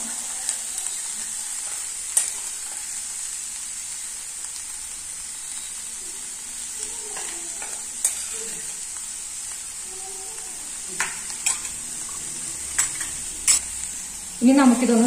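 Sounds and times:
vegetables sizzling in oil: 0:00.0 - 0:15.0.

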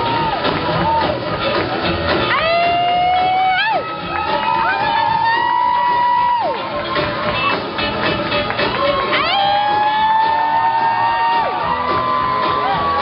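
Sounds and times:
audience cheering and whooping: 0:00.0 - 0:07.8, 0:08.7 - 0:13.0
rockabilly band playing: 0:00.0 - 0:13.0.

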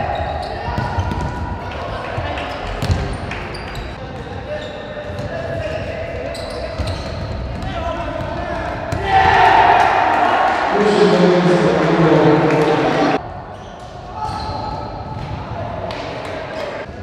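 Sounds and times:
ball kicked and bouncing on court: 0:00.6 - 0:01.5, 0:02.8 - 0:03.2
players shouting: 0:08.6 - 0:13.2.

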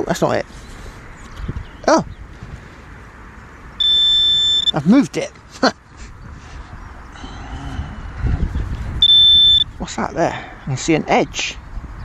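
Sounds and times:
high-pitched pinpointer alarm tone: 0:03.8 - 0:04.8, 0:09.0 - 0:09.7.

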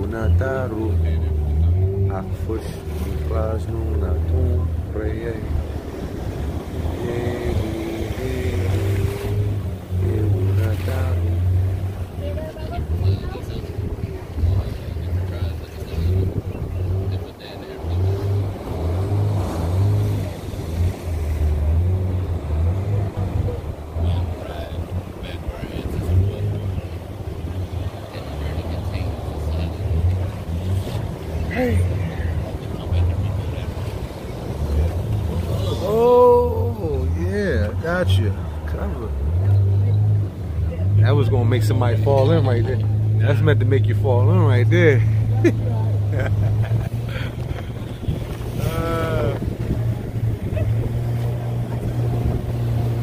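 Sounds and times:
boat rumble: 0:00.0 - 0:53.0
wind on microphone: 0:05.4 - 0:17.3, 0:46.4 - 0:53.0
indistinct voices: 0:06.4 - 0:52.9.

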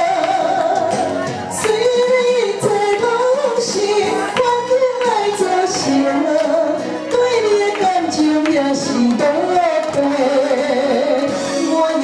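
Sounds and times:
accompaniment music: 0:00.0 - 0:12.0
woman singing a slow ballad: 0:00.0 - 0:12.0.

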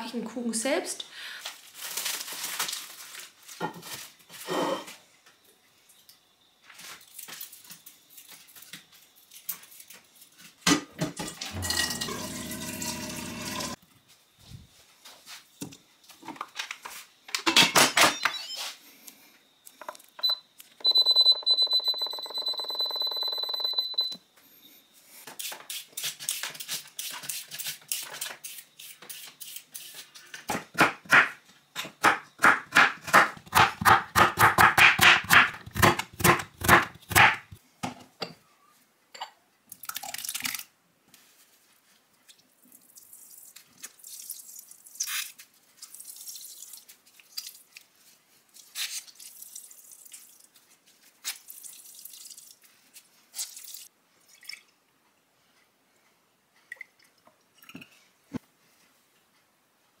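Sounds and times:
pressure cooker beeping: 0:20.2 - 0:24.2
cutter chopping carrots on wood: 0:30.5 - 0:37.6.

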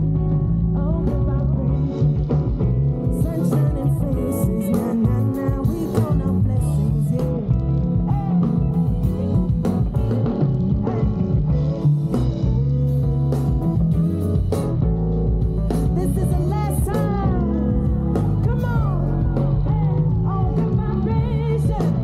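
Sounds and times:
bass line: 0:00.0 - 0:22.0
drums keeping the beat: 0:00.0 - 0:22.0
guitar: 0:00.0 - 0:22.0.

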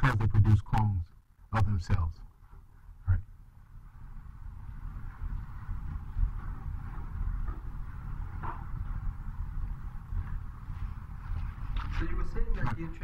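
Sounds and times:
low room rumble: 0:00.0 - 0:13.0.

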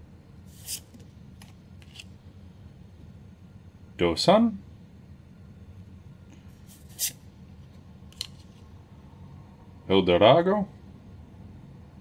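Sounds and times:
trading cards sliding swish: 0:00.5 - 0:01.0, 0:06.6 - 0:07.2.

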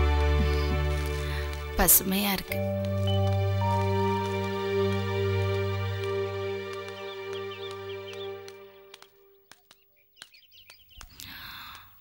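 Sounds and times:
background music: 0:00.0 - 0:09.5
faint bird chirping: 0:06.9 - 0:12.0.

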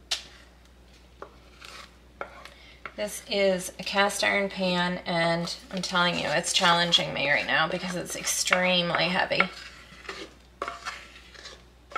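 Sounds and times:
utensil scraping pot: 0:01.4 - 0:02.5, 0:05.4 - 0:11.9.

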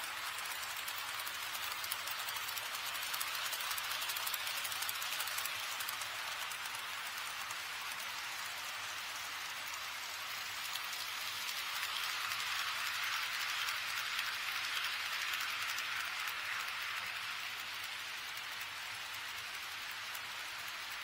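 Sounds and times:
model train wheels rolling on rails: 0:00.0 - 0:21.0.

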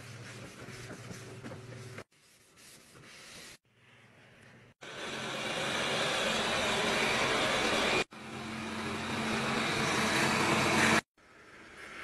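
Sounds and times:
robot vacuum cleaner running: 0:04.8 - 0:11.1.

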